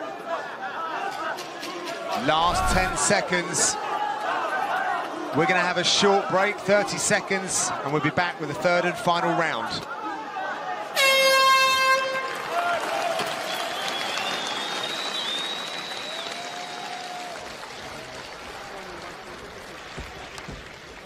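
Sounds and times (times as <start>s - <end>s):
arena crowd noise: 0.0s - 21.0s
horn blast: 11.0s - 12.5s.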